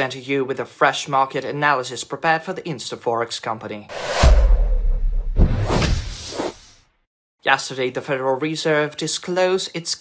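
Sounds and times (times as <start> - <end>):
whoosh: 3.9 - 6.8
deep bass boom: 4.0 - 6.1.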